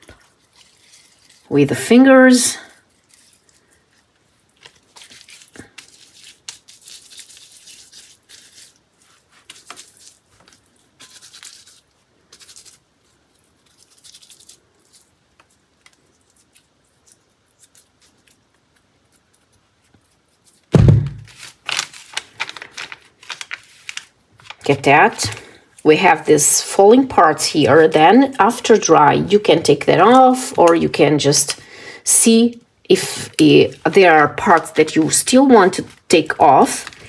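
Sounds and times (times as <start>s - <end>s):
wet paper rustling: 0.0s - 31.6s, 32.9s - 37.0s
thump: 20.7s - 21.3s.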